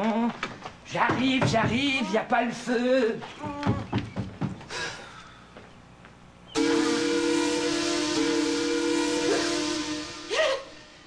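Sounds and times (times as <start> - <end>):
steam whistle: 6.5 - 11.0.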